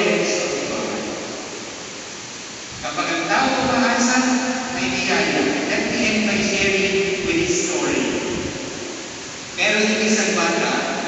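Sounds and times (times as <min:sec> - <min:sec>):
man talking: 0:00.0 - 0:01.3, 0:02.8 - 0:08.4, 0:09.6 - 0:11.0
room noise hiss: 0:00.0 - 0:11.0.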